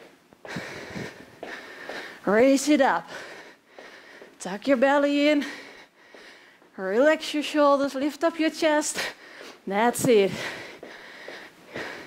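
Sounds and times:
woman breathing heavily: 0:00.0 - 0:06.8, 0:08.9 - 0:12.0.

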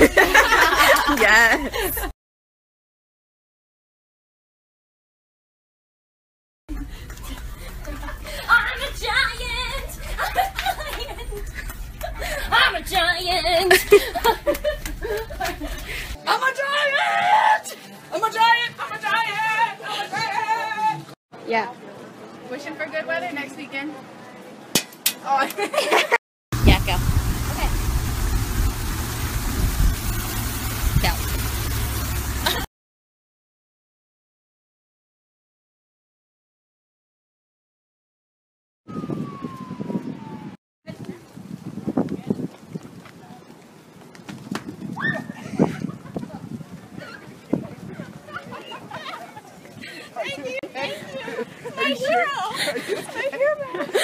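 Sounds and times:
footsteps on wooden planks: 0:42.0 - 0:45.0
woman shrieking: 0:45.0 - 0:45.4.

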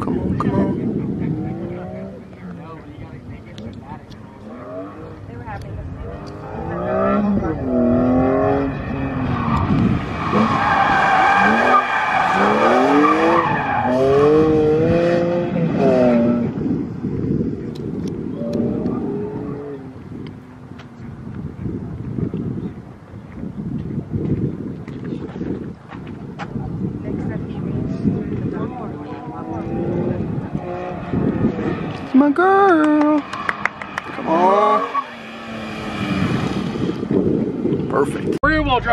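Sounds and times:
car engine revving: 0:00.0 - 0:16.8, 0:28.4 - 0:38.3.

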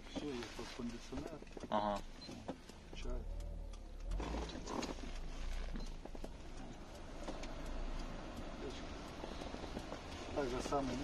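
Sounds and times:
car engine idling in cabin: 0:00.0 - 0:11.0.

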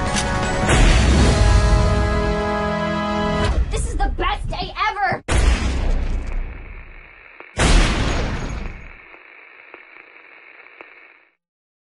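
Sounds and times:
heavy boom hits: 0:00.6 - 0:01.9, 0:05.3 - 0:06.3, 0:07.6 - 0:08.8.

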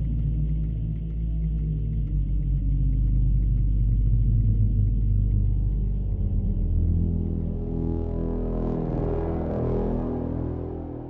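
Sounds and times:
faint engine hum: 0:00.0 - 0:11.0.

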